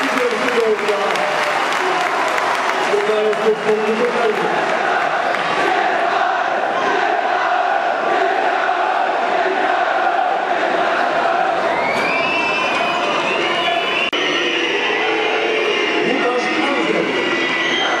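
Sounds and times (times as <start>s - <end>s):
stadium crowd cheering and chanting: 0.0s - 18.0s
shrill whistling: 11.6s - 18.0s.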